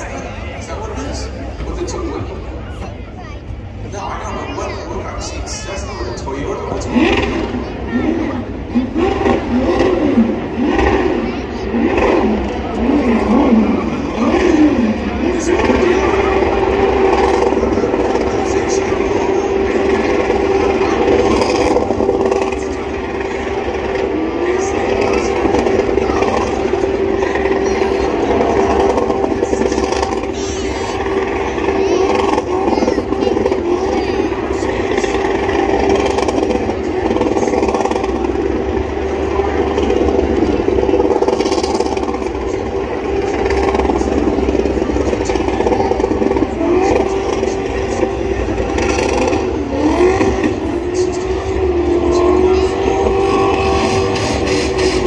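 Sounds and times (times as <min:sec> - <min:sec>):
car engine revving high: 0:04.4 - 0:55.0.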